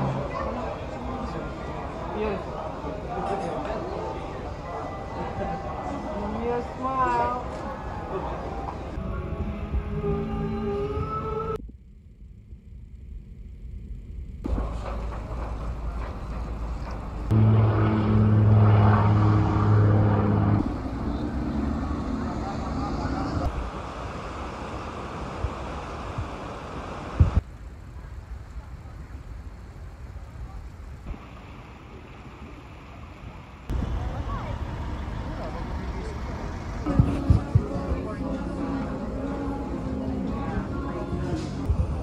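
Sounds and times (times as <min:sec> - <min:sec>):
people murmuring: 0:00.0 - 0:10.8, 0:33.7 - 0:42.0
low ship engine hum: 0:00.0 - 0:42.0.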